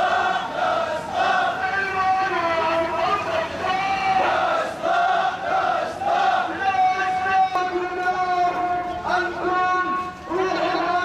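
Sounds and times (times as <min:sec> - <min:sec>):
crowd chanting slogans: 0:00.0 - 0:07.3.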